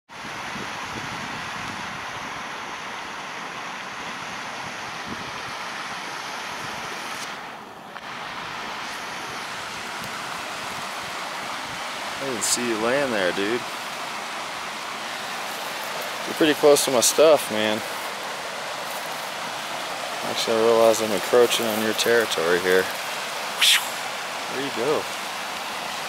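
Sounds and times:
steady rushing outdoor noise: 0:00.1 - 0:26.0.

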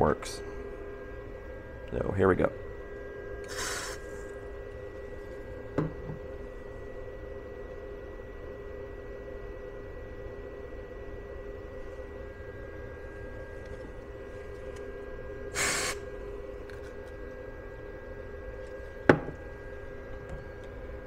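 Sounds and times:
battery charger humming: 0:02.6 - 0:21.0
loud hiss: 0:15.6 - 0:16.0.

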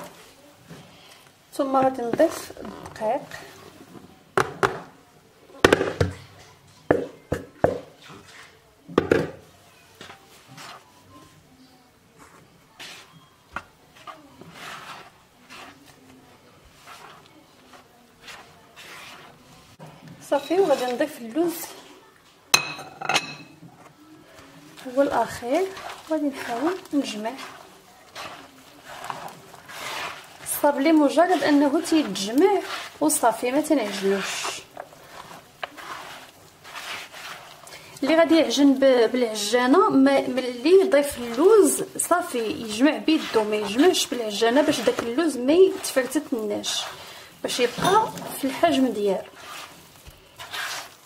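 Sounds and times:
plastic bowl knocking on bowl rim: 0:05.6 - 0:06.2, 0:06.9 - 0:07.9, 0:09.0 - 0:09.4
hands squeezing crumbly dough: 0:12.3 - 0:21.0, 0:24.2 - 0:51.0.

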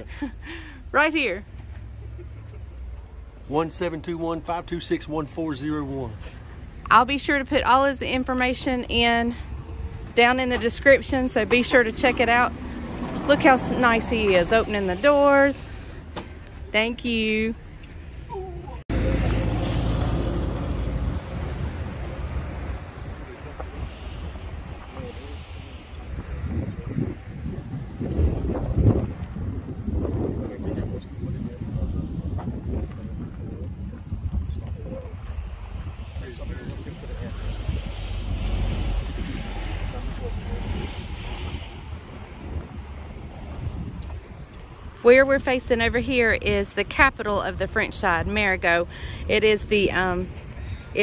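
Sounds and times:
wind buffeting microphone: 0:06.6 - 0:51.0.

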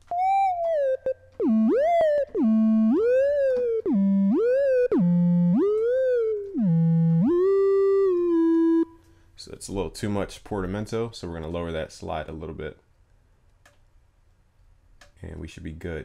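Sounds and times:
gliding sine-wave synth lead: 0:00.0 - 0:09.0.

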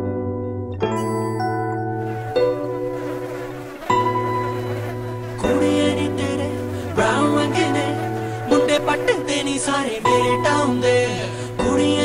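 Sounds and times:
sustained music notes: 0:00.9 - 0:12.0.

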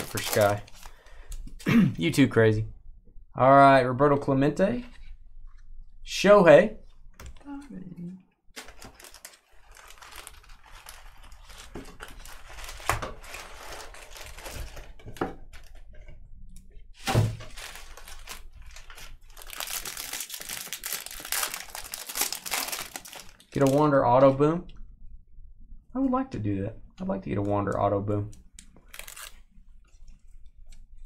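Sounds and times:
foil wrappers crinkling and tearing: 0:00.0 - 0:01.2, 0:08.6 - 0:15.0, 0:17.0 - 0:23.9, 0:28.8 - 0:29.4.

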